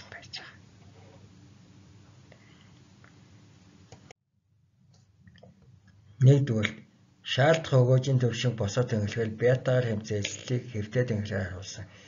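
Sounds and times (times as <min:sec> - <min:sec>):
low steady hum: 0:00.0 - 0:12.0
person speaking: 0:06.2 - 0:12.0.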